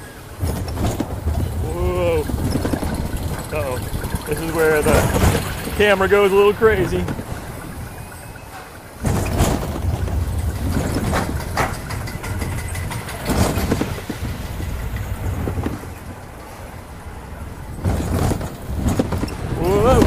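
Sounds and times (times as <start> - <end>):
roller coaster rumble and rattle: 0.0 - 20.0
wind on microphone: 0.0 - 20.0
sharp clatters: 0.1 - 16.6.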